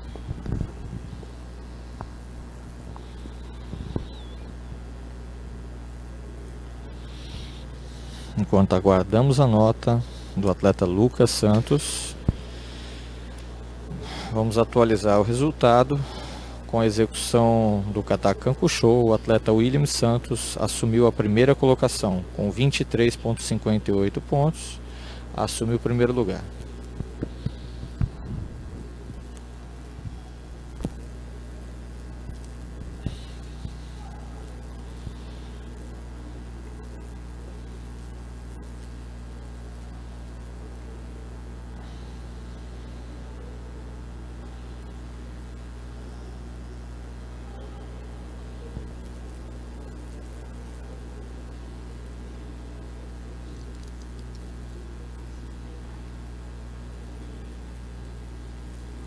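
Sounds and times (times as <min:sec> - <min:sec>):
low electrical hum: 0:00.0 - 0:59.0.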